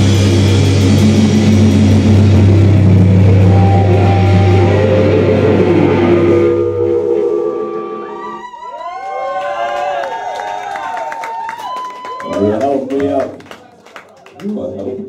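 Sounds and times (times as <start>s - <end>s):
metal band playing loud: 0.0s - 8.4s
guitar chord ringing out: 0.6s - 8.4s.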